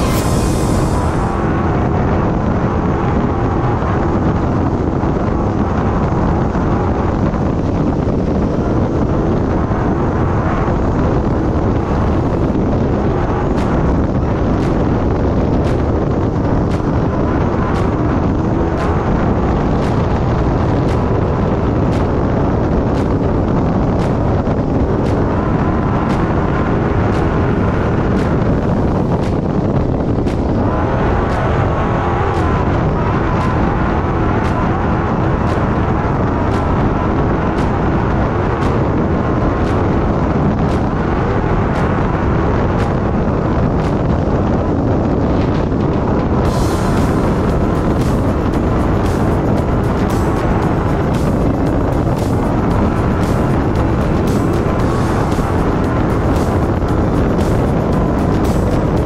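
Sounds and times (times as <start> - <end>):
race car engine: 0.0 - 59.0
wind noise: 0.0 - 59.0
steady high tick: 46.4 - 59.0.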